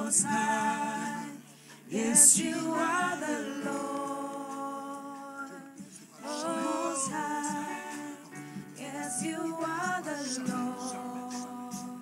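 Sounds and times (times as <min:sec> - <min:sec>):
voices singing slowly: 0:00.0 - 0:12.0.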